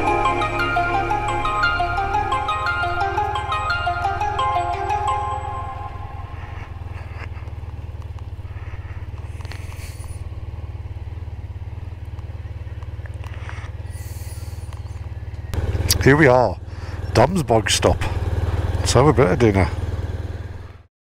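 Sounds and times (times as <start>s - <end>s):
motorcycle engine idling: 0.0s - 20.9s
tyres rolling on gravel: 6.2s - 20.3s.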